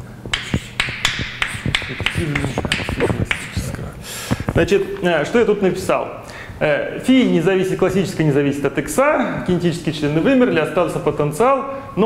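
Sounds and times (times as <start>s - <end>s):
chalk tapping on a blackboard: 0.3s - 3.7s.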